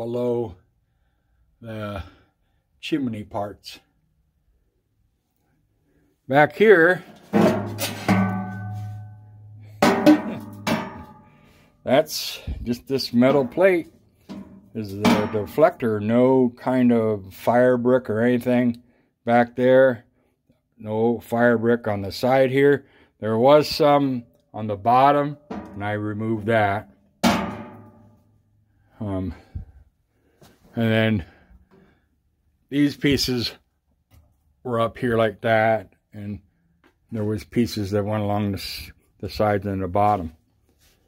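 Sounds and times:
sheet metal clang ringing: 7.3 - 11.6, 14.3 - 15.8, 27.2 - 28.2.

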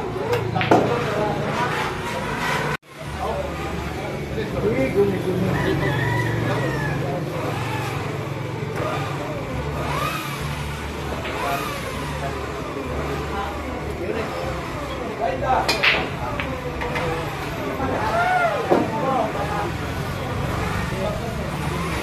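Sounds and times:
background chatter: 0.0 - 22.0
rooster crowing: 5.4 - 7.9.

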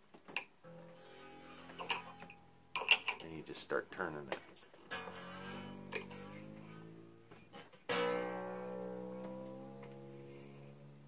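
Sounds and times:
guitar strings ringing: 0.6 - 11.0.

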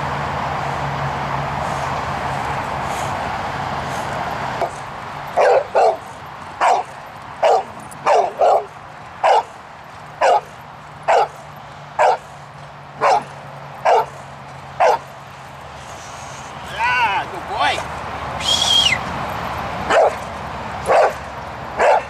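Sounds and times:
dog barking: 5.4 - 9.6, 10.2 - 10.5, 11.1 - 11.4, 12.0 - 12.2, 13.0 - 14.2, 14.8 - 15.1, 19.9 - 20.2, 20.8 - 21.2, 21.8 - 22.0.

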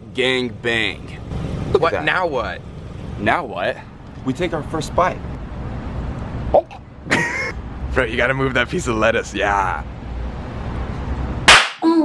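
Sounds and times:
loud sharp crack: 11.4 - 11.8.

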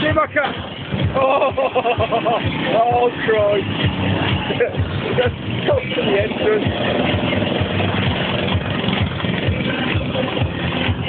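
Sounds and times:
go-kart engine running: 0.0 - 11.0.

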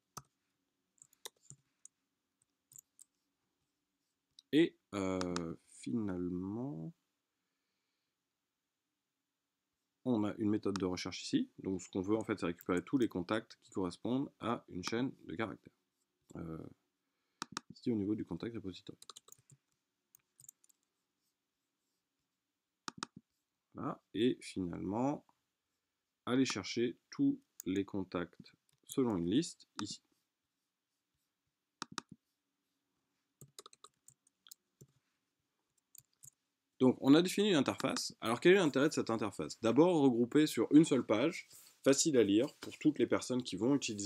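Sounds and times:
keyboard and mouse clicks: 17.4 - 17.8, 18.9 - 19.6, 22.9 - 23.2, 31.8 - 32.2, 33.4 - 34.9, 37.7 - 38.1.

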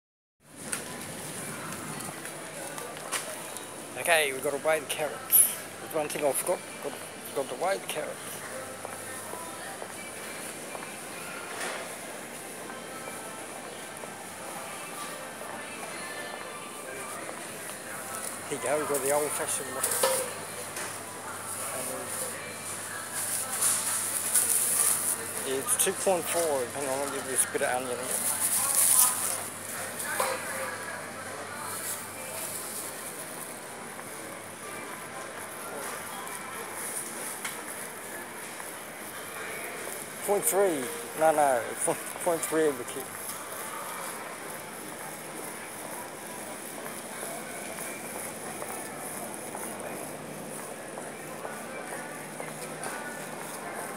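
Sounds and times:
distant voices of shoppers: 0.4 - 53.9
store hubbub: 0.4 - 53.9.

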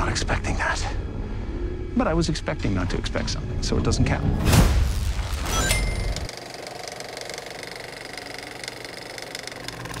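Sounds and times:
film projector clatter: 6.3 - 10.0.

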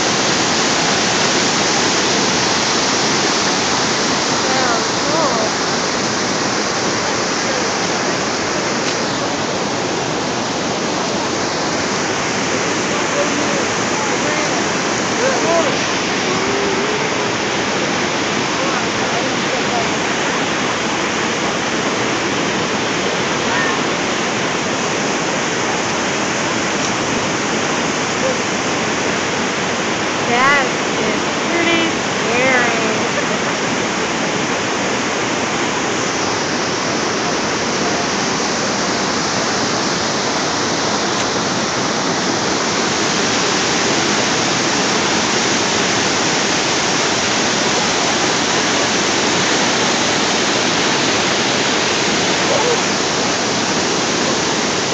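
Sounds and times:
waterfall roar: 0.0 - 54.9
person calling out: 15.2 - 17.3.

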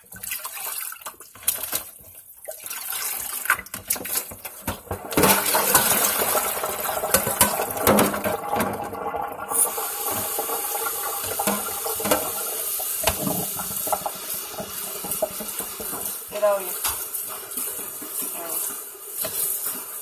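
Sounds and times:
metal pot clattering: 3.6 - 8.9, 9.5 - 20.0
tap running into metal sink: 7.0 - 8.8, 10.0 - 16.2.

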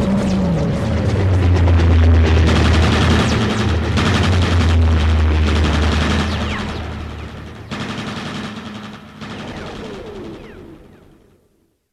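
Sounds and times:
rattling crackling noise: 0.0 - 10.9.

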